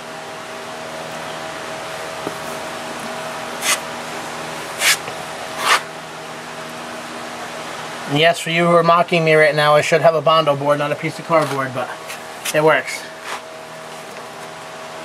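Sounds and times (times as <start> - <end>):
steady mechanical hum: 0.0 - 15.0
spreader scraping filler on metal: 3.6 - 3.9, 4.8 - 5.8.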